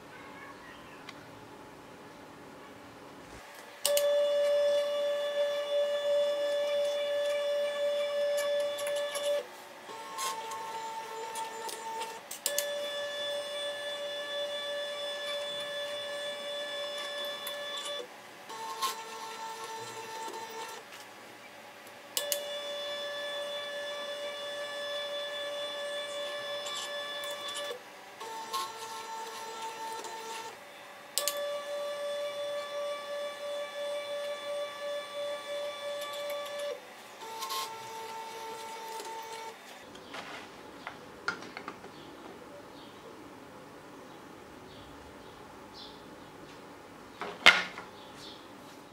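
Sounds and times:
stepper motors whining: 3.8 - 21.0, 22.1 - 40.3
machine clicks: 22.2 - 22.5, 31.2 - 31.7.

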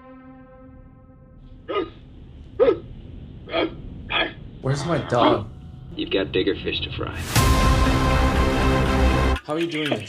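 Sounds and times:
sharp vocal yelps: 3.5 - 4.4.

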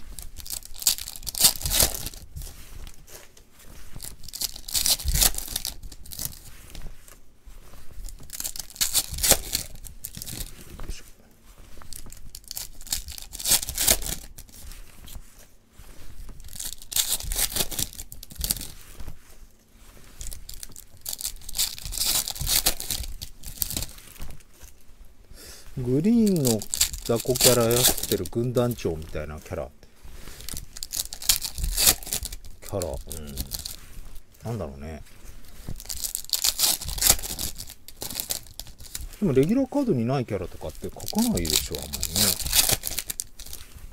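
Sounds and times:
foil wrapper crinkling: 0.0 - 24.8, 25.8 - 43.9
cards rustling and scraping: 0.0 - 43.9.

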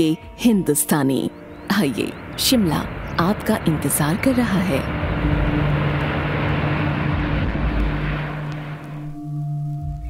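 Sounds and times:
low hum: 1.2 - 10.0
jet engines roaring: 1.6 - 9.3.

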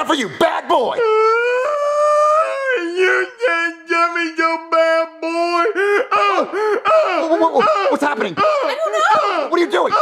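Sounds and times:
high-pitched vocal wail: 0.9 - 3.8.

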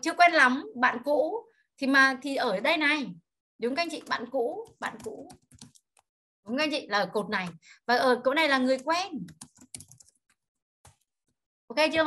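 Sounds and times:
computer keyboard typing: 3.8 - 6.1, 8.6 - 11.4.

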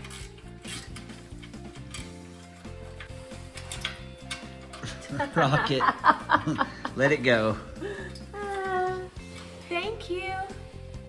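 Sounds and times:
ratchet wrench clicks: 0.0 - 2.2
background music: 0.0 - 11.0.

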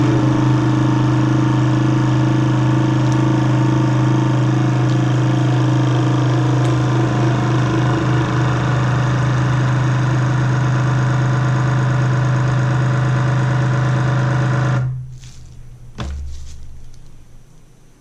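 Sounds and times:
vacuum sealer pump humming: 0.0 - 18.0.

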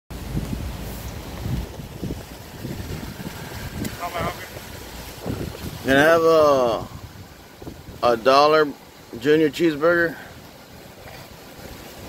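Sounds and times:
wind buffeting microphone: 0.1 - 8.3.

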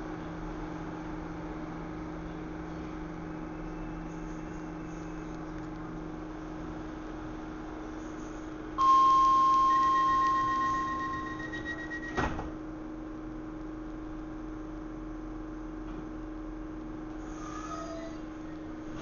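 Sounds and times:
train carriage electrical hum: 0.0 - 19.0
door-closing warning tone: 8.8 - 12.5.

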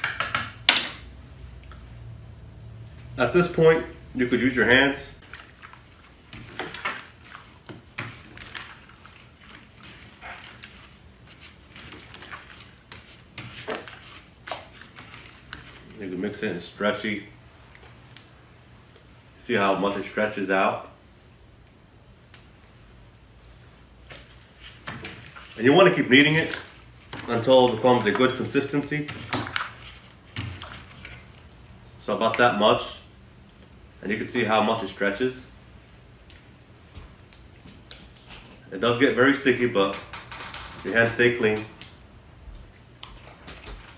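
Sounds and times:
faint room hum: 0.0 - 43.9
slime squishing: 3.0 - 16.7, 23.5 - 33.8, 36.0 - 43.9.

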